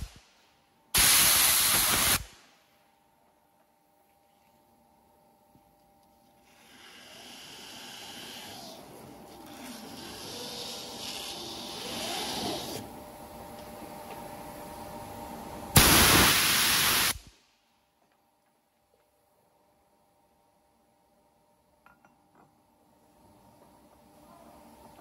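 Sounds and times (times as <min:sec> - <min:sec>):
loud steady hiss: 0:00.0 - 0:02.7, 0:06.4 - 0:12.9, 0:15.7 - 0:17.6.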